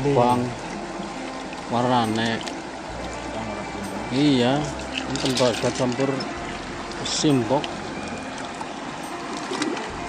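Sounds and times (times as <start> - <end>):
water sloshing and trickling: 0.0 - 10.0.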